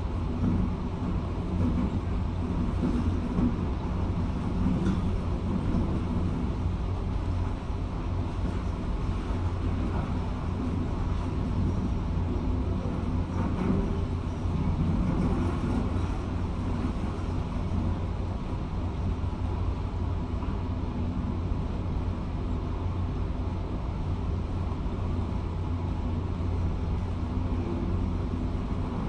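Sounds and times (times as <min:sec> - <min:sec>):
muffled excavator rumble: 0:00.0 - 0:29.0.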